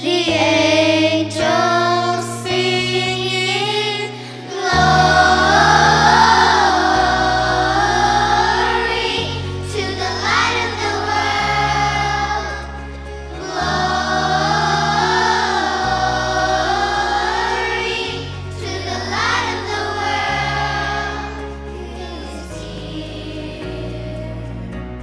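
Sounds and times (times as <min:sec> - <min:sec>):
children's choir singing: 0:00.0 - 0:25.0
instrumental accompaniment: 0:04.5 - 0:25.0.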